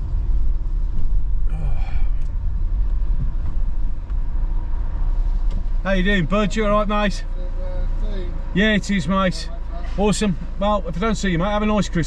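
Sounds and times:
car engine rumble inside cabin: 0.0s - 12.0s.

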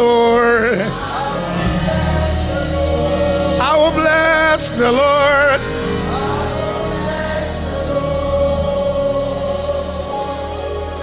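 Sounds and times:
choir singing sustained notes: 0.0s - 11.0s.

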